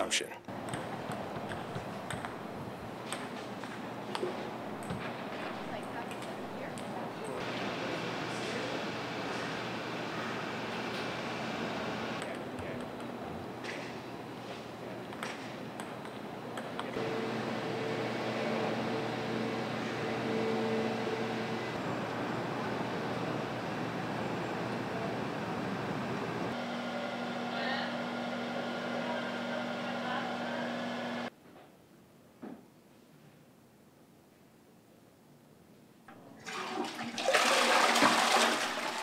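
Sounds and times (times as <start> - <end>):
machine humming: 0.5 - 14.3, 15.6 - 31.3.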